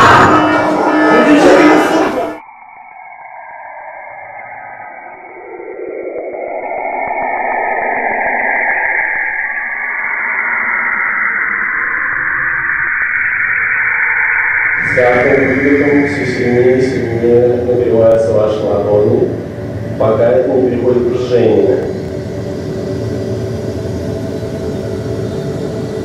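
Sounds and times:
noisy rising intro sound effect: 0.0 - 26.0.

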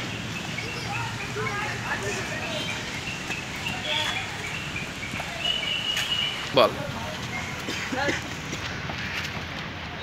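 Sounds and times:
children chattering and calling: 0.0 - 9.5.

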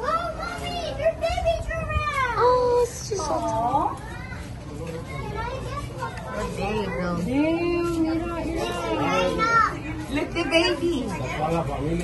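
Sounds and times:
children calling out: 0.0 - 2.7.

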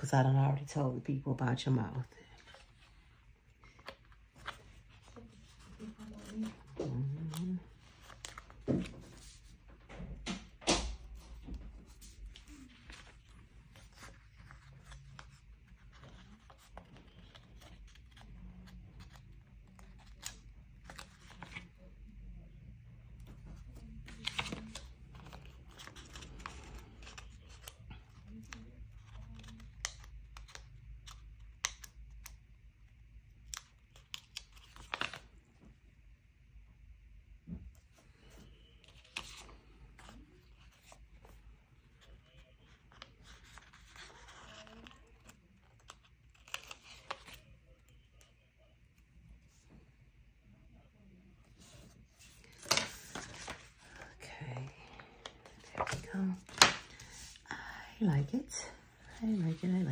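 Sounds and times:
paper rustling: 2.0 - 9.6, 11.0 - 21.8, 23.3 - 31.9, 33.5 - 35.4, 37.8 - 48.3, 51.4 - 57.4.

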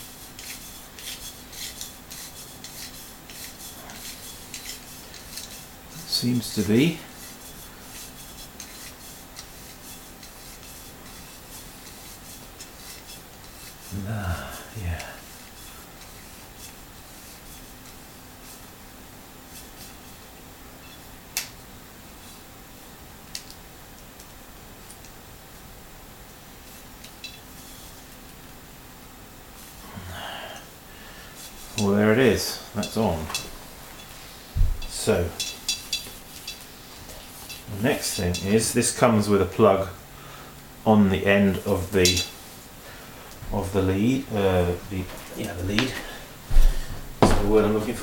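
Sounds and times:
ceramic rubbing on metal fitting: 0.0 - 18.6
breathy exhale: 29.8 - 31.4.

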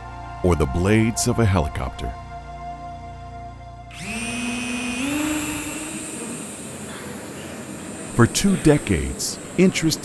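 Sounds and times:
drone motor whining: 3.9 - 10.0
rushing hiss: 6.2 - 10.0.

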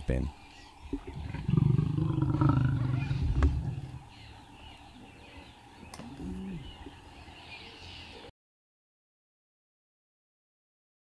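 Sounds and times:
lions growling: 1.0 - 4.2, 6.0 - 6.8.

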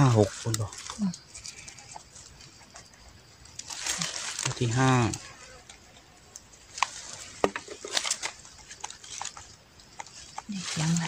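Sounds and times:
scratching in dry leaves: 0.0 - 11.0.

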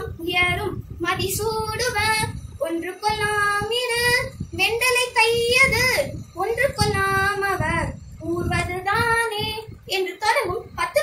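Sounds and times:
girl singing unaccompanied: 0.0 - 11.0.

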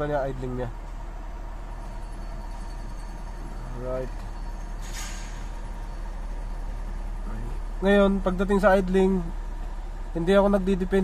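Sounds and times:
car engine idling: 0.0 - 11.0
brief hiss: 4.8 - 5.6.

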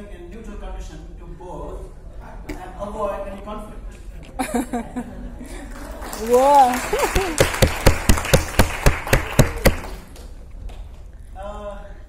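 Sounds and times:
audience applauding: 5.7 - 10.4
sharp hand claps close by: 6.9 - 10.3.

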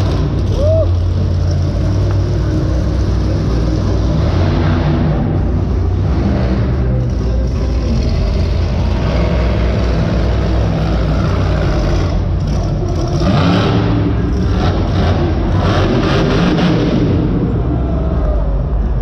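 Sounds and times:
truck engine revving hard: 0.0 - 18.2.

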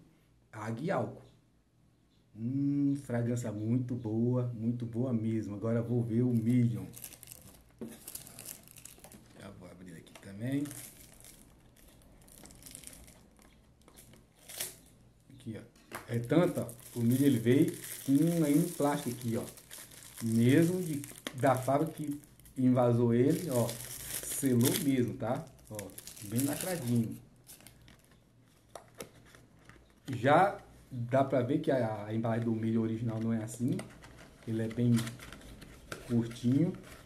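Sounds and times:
plastic-wrapped box handling: 6.4 - 9.4, 10.3 - 14.8, 16.2 - 22.6, 23.3 - 28.2.

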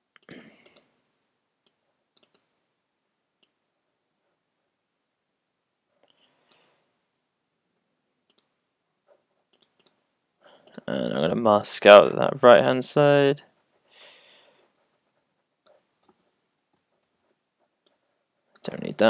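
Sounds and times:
computer mouse clicks: 0.1 - 0.9, 1.6 - 2.5, 8.2 - 8.5, 9.5 - 10.0, 15.6 - 17.2
man's voice: 10.8 - 13.4, 18.6 - 19.0.

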